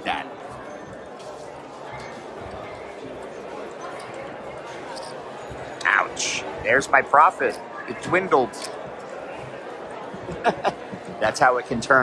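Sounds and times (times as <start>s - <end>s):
casino background noise: 0.0s - 12.0s.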